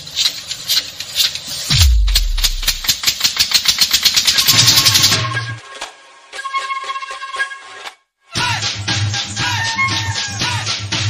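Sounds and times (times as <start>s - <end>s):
low bass note: 1.7s - 2.8s
rapid drum roll: 1.7s - 3.1s.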